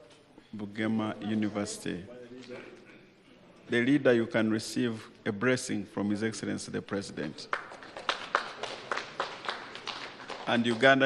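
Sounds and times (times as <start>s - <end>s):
hand clapping: 7.5s - 11.0s.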